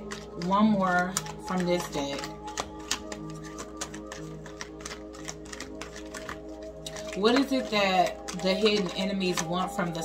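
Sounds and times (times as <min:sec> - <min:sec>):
background music sustained tones: 0:00.0 - 0:10.0
cards being shuffled: 0:00.0 - 0:10.0.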